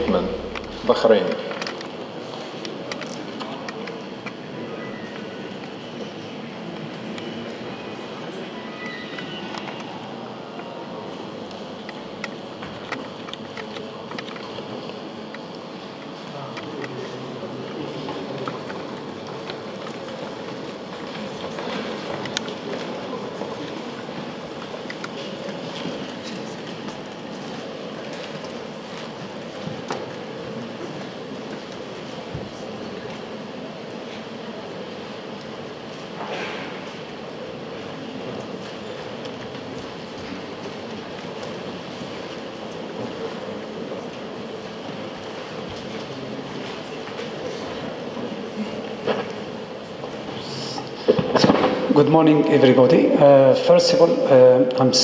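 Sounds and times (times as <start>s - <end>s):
audience shuffling murmur: 0.0s - 54.9s
faint hum: 0.0s - 55.0s.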